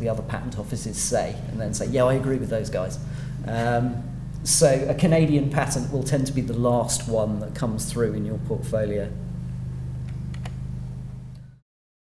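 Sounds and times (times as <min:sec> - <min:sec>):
low electrical hum: 0:00.0 - 0:11.6.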